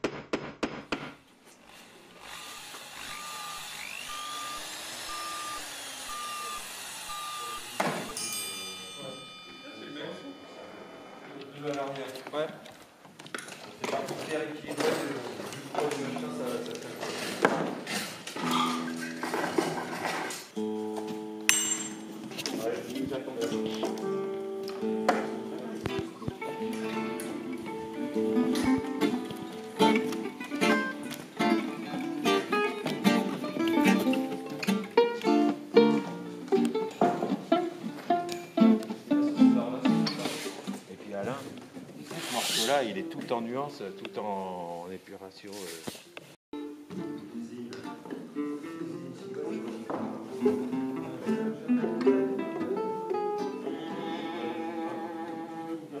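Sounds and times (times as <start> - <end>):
sweeping tones: 3.0 - 12.0
high beep: 3.1 - 8.4
people talking: 7.2 - 12.6, 13.8 - 17.2, 22.4 - 24.0, 39.3 - 41.6, 42.2 - 45.8, 47.0 - 52.8
acoustic string band playing: 22.2 - 40.9, 46.6 - 56.0.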